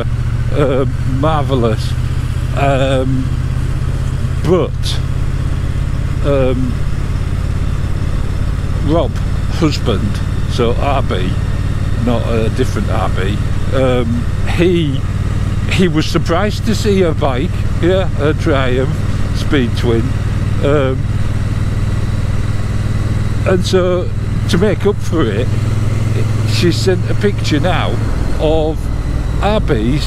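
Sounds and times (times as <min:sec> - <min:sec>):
motorcycle engine cruising: 0:00.0 - 0:30.0
wind and road noise: 0:00.0 - 0:30.0.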